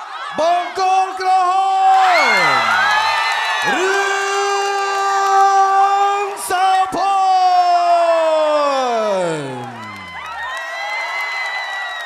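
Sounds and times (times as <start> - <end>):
crowd cheering: 0.0 - 12.0
man calling over loudspeakers: 0.3 - 2.7, 3.7 - 9.8.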